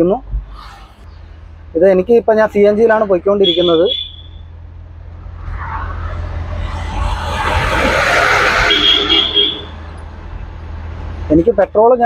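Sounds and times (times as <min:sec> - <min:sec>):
vehicle passing by: 0:04.6 - 0:11.3.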